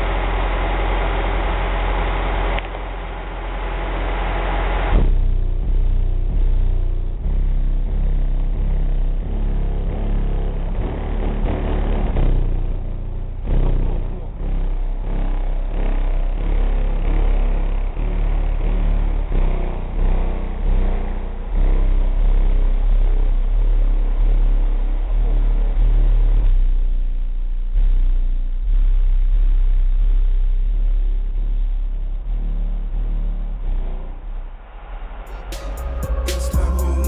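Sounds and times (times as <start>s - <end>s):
hip-hop music through car subwoofer: 2.9s - 37.0s.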